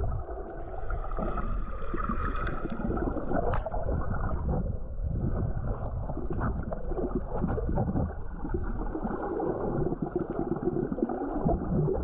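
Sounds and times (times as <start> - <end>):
underwater rumble and gurgle: 0.0 - 12.0.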